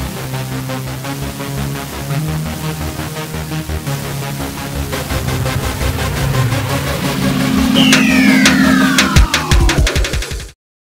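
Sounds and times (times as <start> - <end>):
car engine sound effect: 3.9 - 10.3
whine falling in pitch: 4.0 - 10.3
electronic music with steady beat: 6.5 - 10.5.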